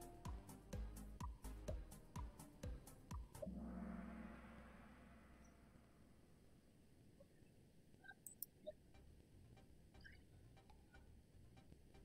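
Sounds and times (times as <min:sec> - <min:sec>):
low electronic tone: 0:03.4 - 0:06.6.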